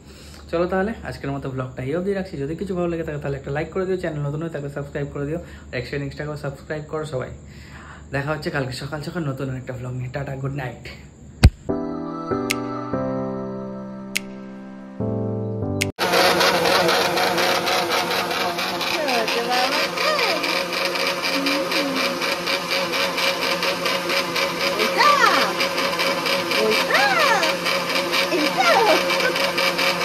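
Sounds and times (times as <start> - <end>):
mixer grinder motor running: 16.0 - 30.0.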